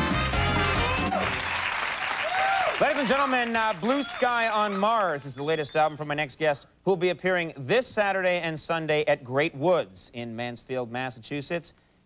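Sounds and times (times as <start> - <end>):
studio audience applauding: 0.0 - 6.0
man speaking: 2.8 - 11.8.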